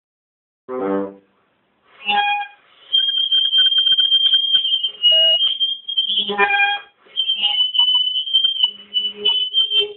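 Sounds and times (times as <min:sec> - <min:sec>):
bassoon notes: 0:00.7 - 0:01.2.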